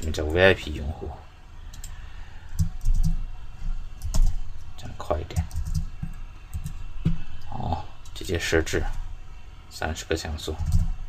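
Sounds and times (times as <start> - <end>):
computer mouse and keyboard clicks: 1.7 - 3.2.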